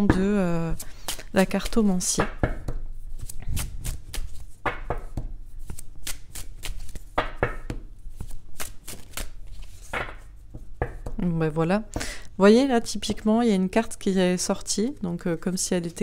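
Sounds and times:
cards being shuffled: 0.7s - 11.2s.

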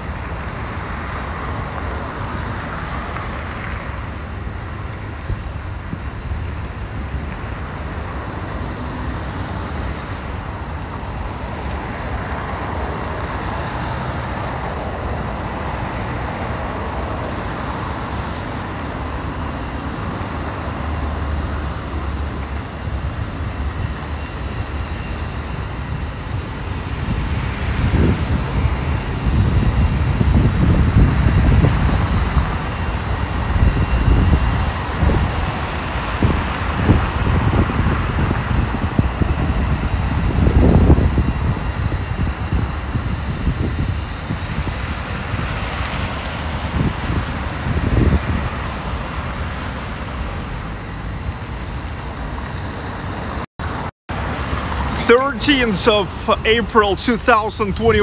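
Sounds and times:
road traffic noise: 0.0s - 58.0s.

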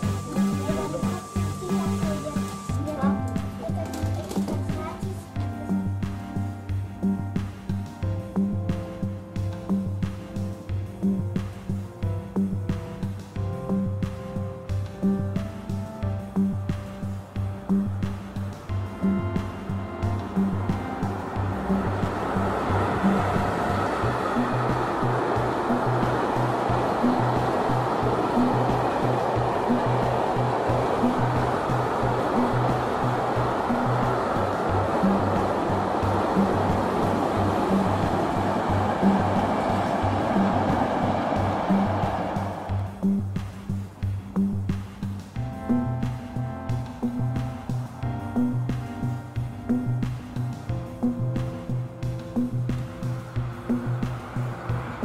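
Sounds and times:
passing train rushing: 0.0s - 7.2s, 17.0s - 44.6s, 46.7s - 55.0s
music with low beat: 0.0s - 55.0s.

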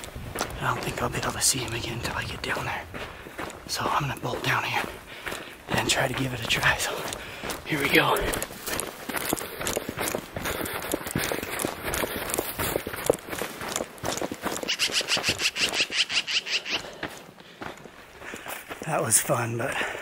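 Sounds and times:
footsteps running through dry grass: 0.0s - 20.0s.

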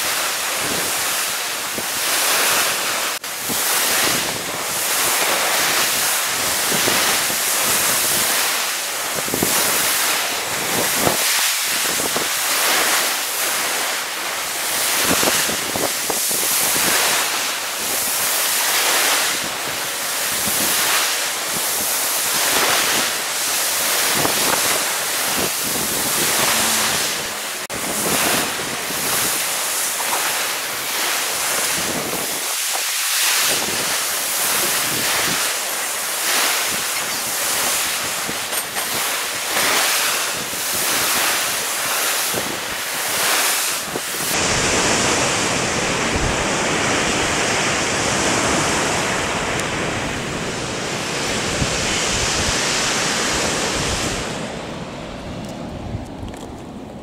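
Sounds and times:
surf breaking against rocks: 0.0s - 54.6s
wind on microphone: 0.0s - 57.0s.

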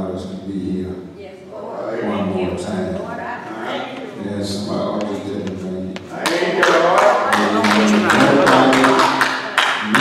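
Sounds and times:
man speaking through microphone: 1.9s - 9.2s.

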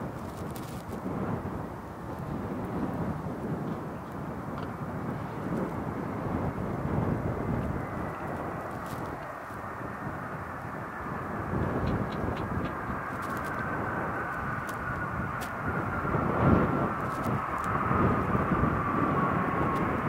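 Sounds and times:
jet engines rumbling: 0.0s - 20.0s
jet fan whine: 0.0s - 20.0s.

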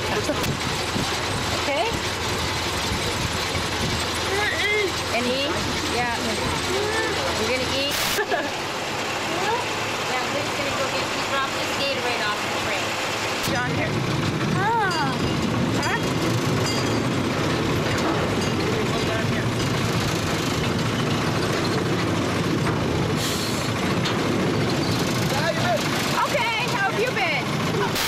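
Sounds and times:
small train rumbling and rattling: 0.0s - 28.0s
voices calling out: 0.0s - 28.0s.

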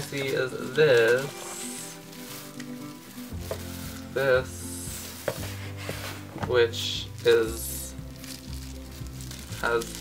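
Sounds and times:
paper and bubble wrap rustling: 0.0s - 10.0s
soft background music: 0.0s - 10.0s.

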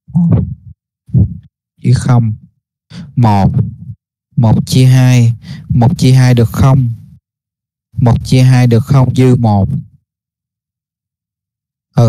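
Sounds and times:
man speaking: 1.2s - 2.4s, 3.0s - 3.8s, 4.4s - 7.0s, 8.0s - 9.8s.

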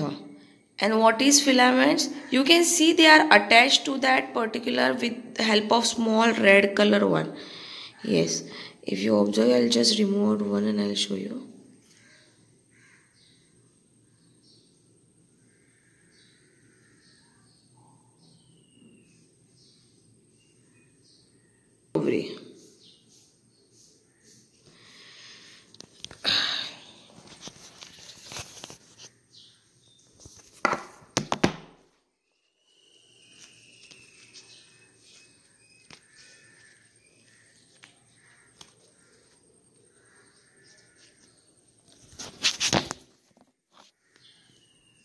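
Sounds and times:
faint bird chirps: 11.8s - 25.6s, 32.2s - 42.2s, 44.0s - 45.0s.

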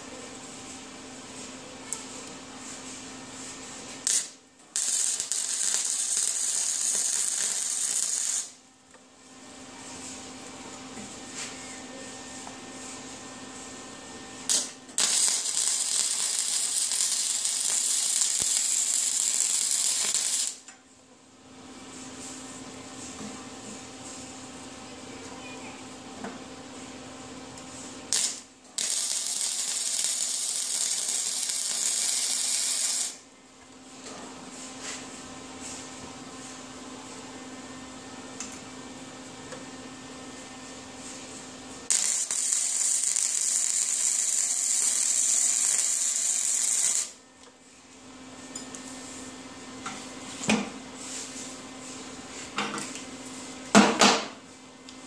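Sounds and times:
welding arc sizzling hiss: 2.2s - 8.6s, 12.9s - 20.6s, 27.5s - 33.2s, 40.4s - 47.2s.

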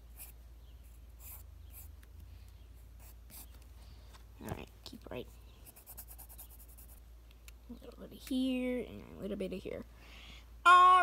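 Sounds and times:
pencil scratching on paper: 0.0s - 2.0s, 2.8s - 3.6s, 5.6s - 7.0s.

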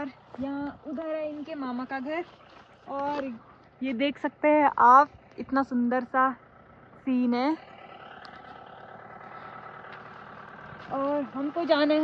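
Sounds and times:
vehicle engine running with whine: 0.0s - 12.0s.

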